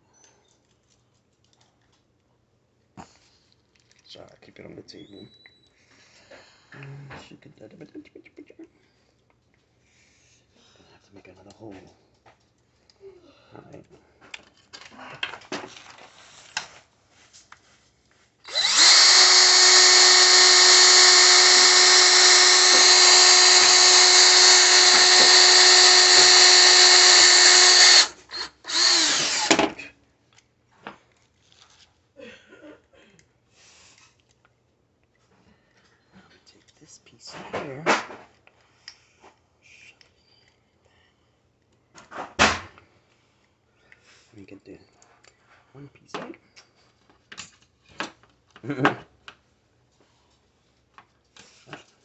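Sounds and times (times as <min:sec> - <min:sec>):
handling metal slinky and plastic toys: 0:03.6 - 0:04.3
cordless drill whining: 0:18.4 - 0:29.9.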